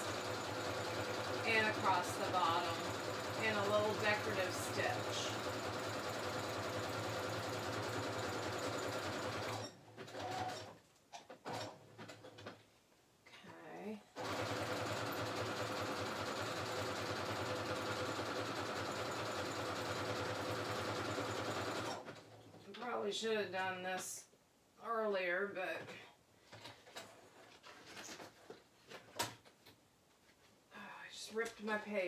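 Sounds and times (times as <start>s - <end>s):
electric sewing machine stitching: 0.0s - 10.8s, 14.2s - 22.4s.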